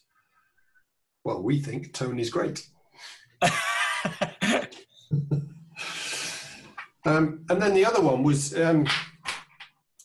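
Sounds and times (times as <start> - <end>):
men laughing: 3.4 - 6.3
long breathy sound: 5.7 - 6.8.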